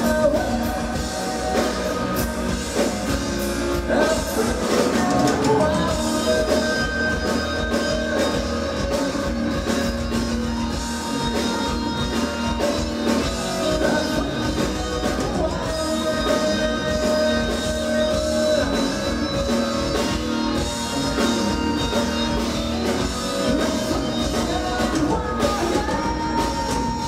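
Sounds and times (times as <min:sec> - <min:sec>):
live metal band playing: 0:00.0 - 0:27.0
sung lead vocals: 0:00.0 - 0:27.0.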